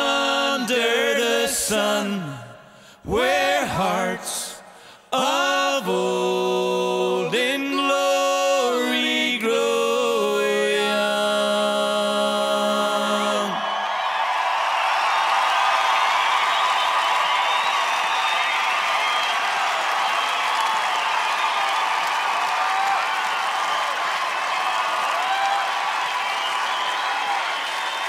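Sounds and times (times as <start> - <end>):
crowd cheering and clapping: 13.1 - 28.0
whoops and shouts: 13.5 - 28.0.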